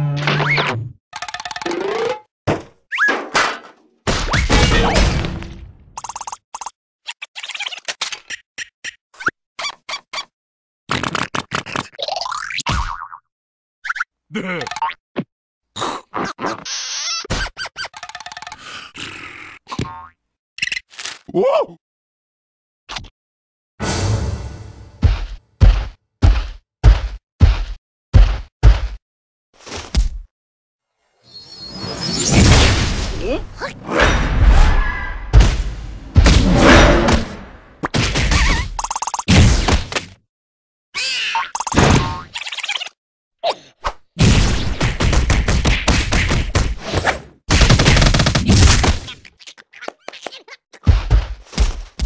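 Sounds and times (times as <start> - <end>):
chattering squeak: 42.4 - 43.0.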